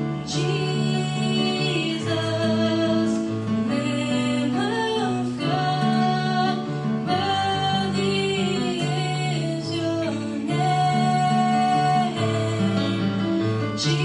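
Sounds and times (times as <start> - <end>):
girl singing into a microphone: 0.0 - 13.1.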